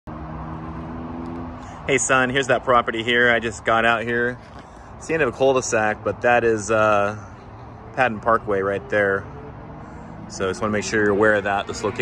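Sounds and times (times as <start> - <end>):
freeway traffic rumble: 0.1 - 12.0
man's voice: 10.3 - 12.0.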